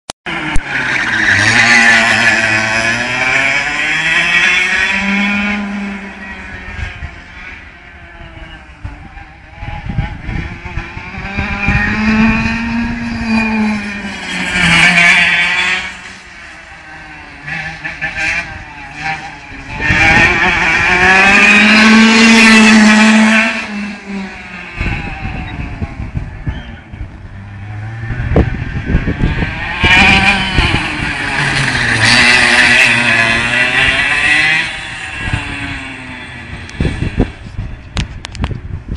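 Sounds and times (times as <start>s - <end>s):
go-kart engines revving: 0.3s - 38.9s.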